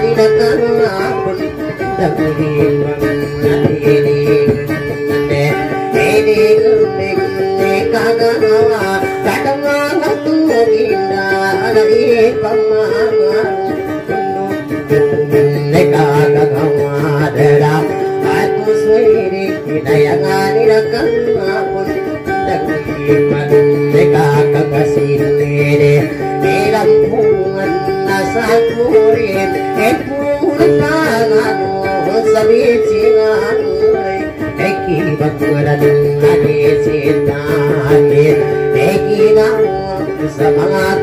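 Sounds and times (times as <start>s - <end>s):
acoustic guitar playing: 0.0s - 41.0s.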